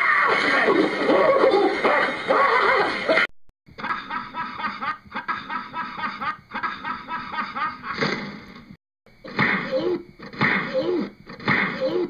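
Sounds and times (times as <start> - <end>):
loud wavering voices: 0.0 - 3.3
man laughing hard: 3.8 - 8.0.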